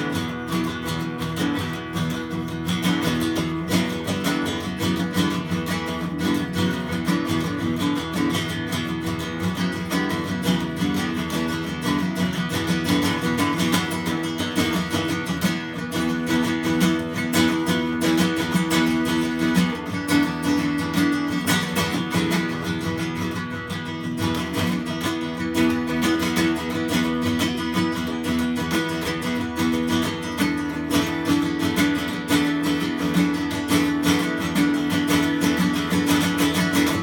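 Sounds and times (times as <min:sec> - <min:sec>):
acoustic guitar strumming: 0:00.0 - 0:37.0.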